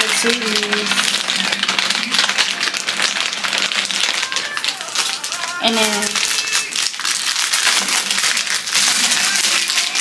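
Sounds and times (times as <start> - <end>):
plastic wrappers crinkling: 0.0 - 10.0.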